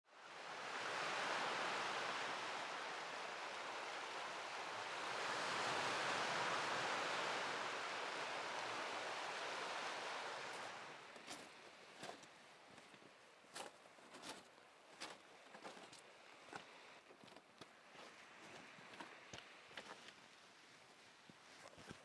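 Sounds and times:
small waves on stony shore: 0.1s - 12.9s.

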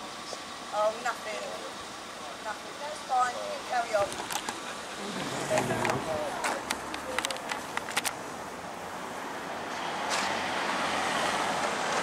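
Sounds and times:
passing vehicle tyres and engine: 0.5s - 12.0s.

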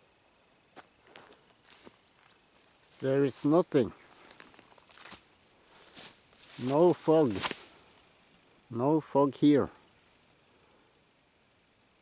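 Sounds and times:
footsteps rustling in tall grass: 0.4s - 10.4s.

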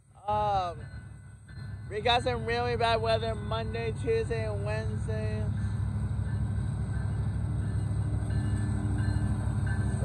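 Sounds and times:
freight train rumbling: 0.0s - 10.0s.

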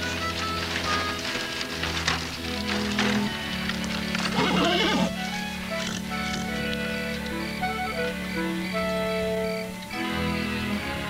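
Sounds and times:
horse call: 0.0s - 9.4s
sustained background music: 0.0s - 11.0s.

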